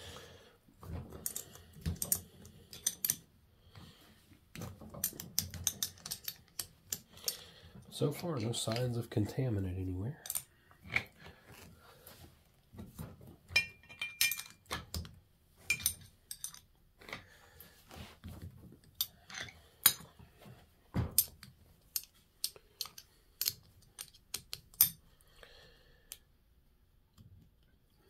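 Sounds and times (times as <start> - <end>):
metal parts clicking and clinking: 1.1 - 3.3, 4.5 - 7.9, 10.2 - 11.2, 13.6 - 17.2, 18.8 - 20.2, 21.1 - 25.0.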